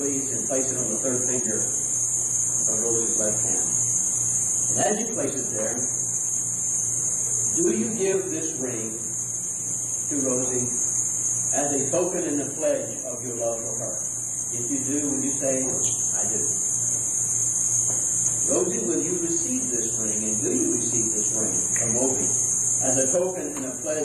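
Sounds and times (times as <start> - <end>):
high-pitched hiss: 0.0 - 24.0
indistinct speech: 14.6 - 16.5, 18.5 - 24.0.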